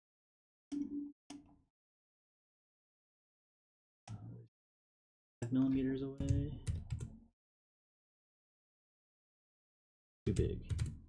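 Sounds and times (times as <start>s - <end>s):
computer keyboard keystrokes: 5.7s - 7.1s, 10.3s - 11.0s.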